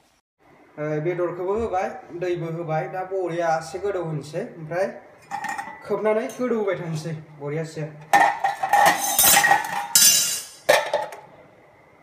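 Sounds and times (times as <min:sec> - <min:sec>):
steel cookware clanking: 0:05.2 - 0:06.4, 0:08.1 - 0:11.2.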